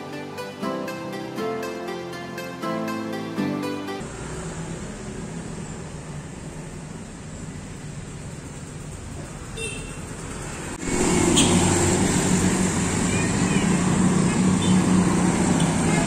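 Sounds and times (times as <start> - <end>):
cars passing: 4.0 - 16.0
faint outdoor background noise: 4.0 - 16.0
motorbikes passing: 4.0 - 16.0.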